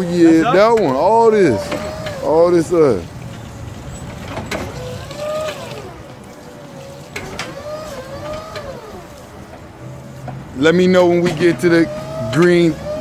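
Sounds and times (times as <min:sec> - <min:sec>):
forklift motor whine: 0:00.0 - 0:03.2, 0:04.2 - 0:13.0.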